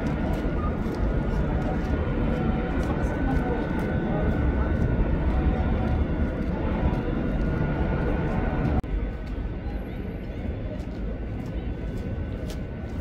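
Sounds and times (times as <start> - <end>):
low urban construction rumble: 0.0 - 13.0.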